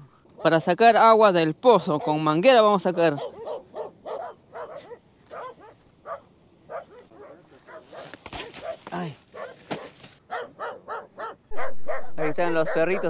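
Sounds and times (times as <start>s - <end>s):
small dogs barking: 0.2s - 0.8s, 1.7s - 13.0s.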